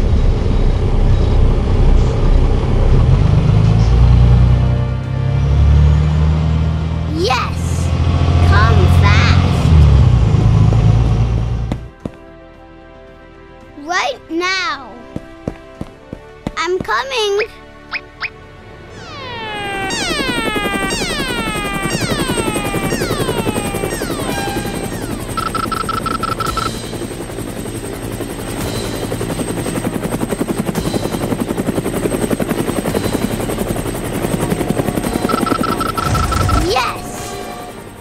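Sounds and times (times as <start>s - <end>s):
cartoon helicopter rotor chop: 7.2s - 11.8s, 18.9s - 38.0s
falling whistle sweeps: 18.9s - 26.7s
short steady beep: 24.2s - 26.7s, 35.3s - 36.6s.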